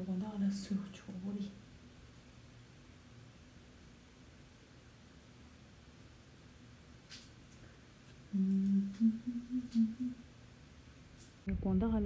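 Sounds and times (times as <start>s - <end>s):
woman humming a tune: 8.3s - 10.3s.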